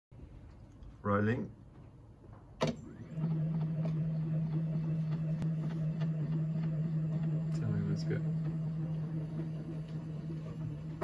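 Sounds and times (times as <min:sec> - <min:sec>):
motor humming: 0:02.8 - 0:11.0.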